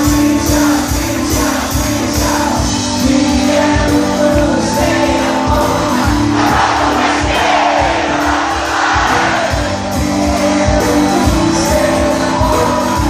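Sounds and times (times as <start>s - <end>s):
crowd noise: 0.0s - 13.0s
rock band playing live: 0.0s - 13.0s
steady drum beat: 0.0s - 13.0s.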